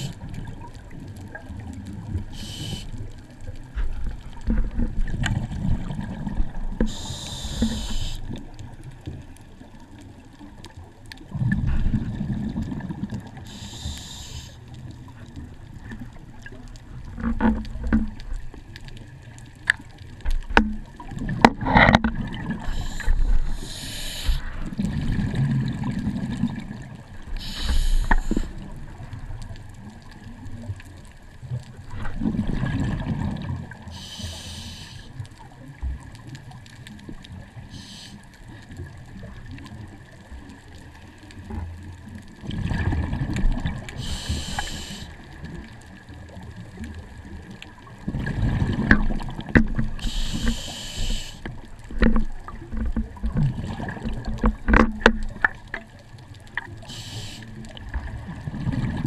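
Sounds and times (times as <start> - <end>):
regulator hiss: 2.3 - 2.9, 6.9 - 8.3, 13.4 - 14.6, 22.6 - 24.5, 27.4 - 28.6, 33.9 - 35.1, 37.7 - 38.2, 44.0 - 45.2, 50.0 - 51.5, 56.8 - 57.6
diver breathing through regulator: 2.3 - 3.0, 6.8 - 8.2, 13.4 - 14.6, 22.6 - 24.8, 27.4 - 28.6, 33.9 - 35.1, 37.7 - 38.2, 44.0 - 45.2, 50.0 - 51.5, 56.9 - 57.6
exhaled bubbles rushing: 4.4 - 6.8, 11.3 - 13.4, 20.8 - 23.6, 24.4 - 27.4, 31.9 - 33.9, 42.4 - 44.0, 47.9 - 50.0, 52.0 - 55.6, 57.6 - 59.0.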